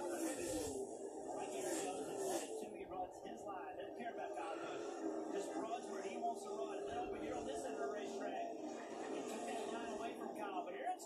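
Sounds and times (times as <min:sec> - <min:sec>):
broadcast background sound: 0:00.0 - 0:11.0
commentator's voice on television: 0:00.0 - 0:11.0.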